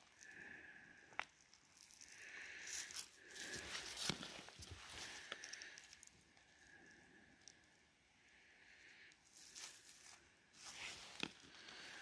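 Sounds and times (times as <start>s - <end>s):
rustling of glove fabric: 2.7s - 5.6s, 9.3s - 12.0s.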